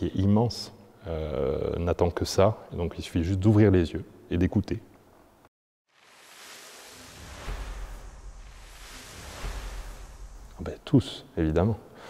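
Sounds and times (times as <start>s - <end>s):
airy whooshing hiss: 5.9s - 11.4s
deep bass swells: 6.0s - 11.4s.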